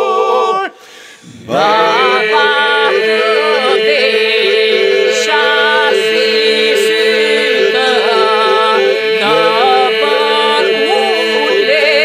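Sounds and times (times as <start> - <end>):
group singing steady drone: 0.0 - 12.0
solo voices singing melodies: 0.0 - 12.0.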